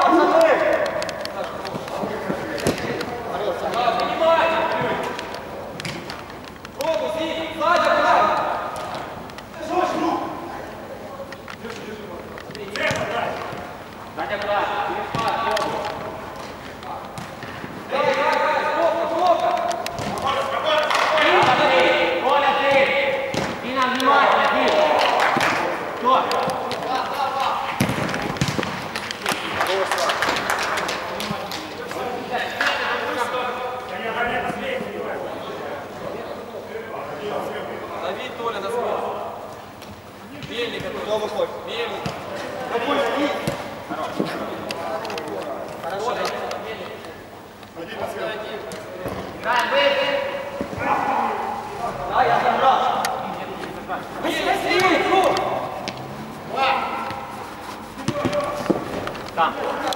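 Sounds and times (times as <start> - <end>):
players shouting: 17.8 - 30.0, 49.6 - 59.9
football kick thuds: 27.8 - 28.8.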